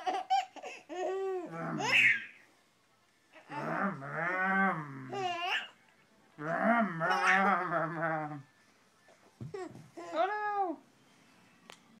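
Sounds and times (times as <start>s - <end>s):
baby squealing: 1.0s - 2.4s.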